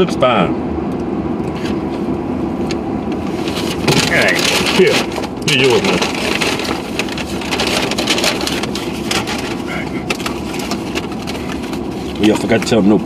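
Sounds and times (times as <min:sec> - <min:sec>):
car cabin hum: 0:00.0 - 0:13.0
paper bag and cardboard crinkling: 0:03.3 - 0:13.0.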